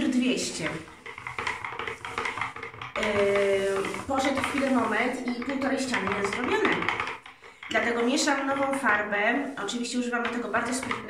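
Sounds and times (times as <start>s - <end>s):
stirrer scraping in paint: 0.0s - 11.0s.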